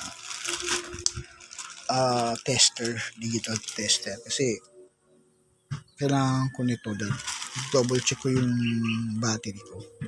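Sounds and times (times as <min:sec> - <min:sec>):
plastic bag rustling: 0:00.0 - 0:04.6, 0:06.2 - 0:09.0.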